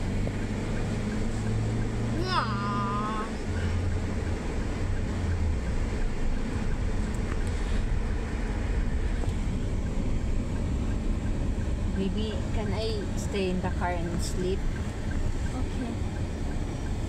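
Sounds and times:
road and engine rumble in car: 0.0s - 17.0s.

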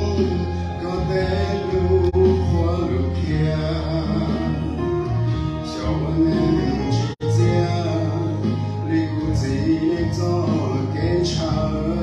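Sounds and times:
accompanying music with bass: 0.0s - 12.0s
man singing into microphone: 0.0s - 12.0s.

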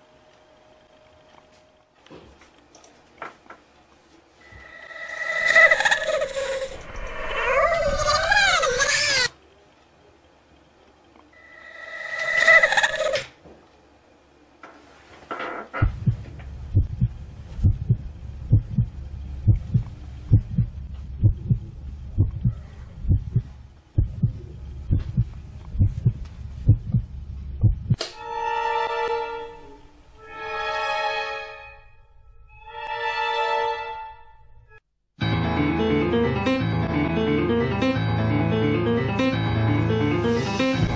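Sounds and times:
high wavering cry: 4.4s - 9.3s, 11.4s - 13.3s
low dull thuds: 15.8s - 28.0s.

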